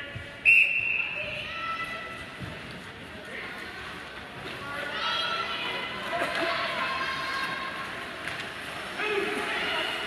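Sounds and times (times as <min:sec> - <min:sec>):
ice hockey arena hum: 0:00.0 - 0:10.0.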